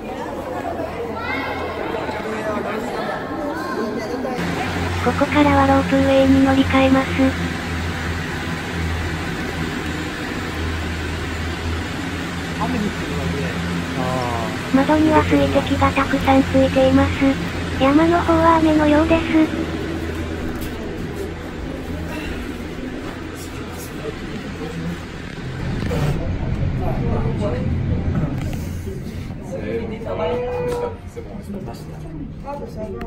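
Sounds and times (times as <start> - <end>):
cabin rolling along rail: 4.4 - 29.4
lift machinery humming: 4.4 - 30.4.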